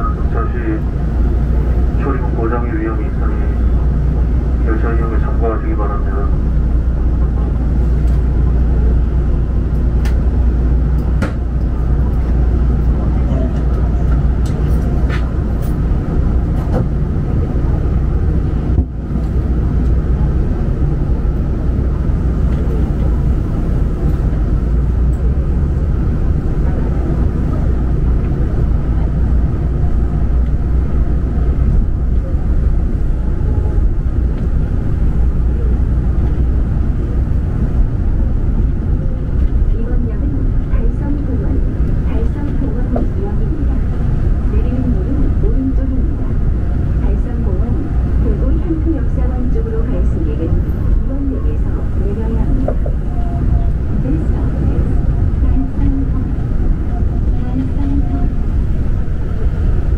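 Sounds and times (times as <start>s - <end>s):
monorail train rumbling: 0.0s - 59.9s.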